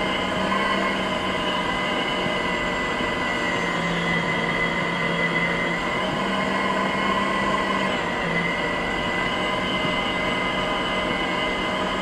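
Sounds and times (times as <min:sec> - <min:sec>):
small electric motors whining: 0:00.0 - 0:12.0.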